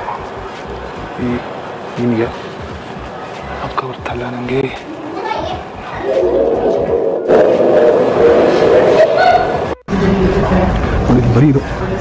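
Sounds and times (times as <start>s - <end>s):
indistinct voices: 0.0s - 12.0s
background din: 5.6s - 10.3s.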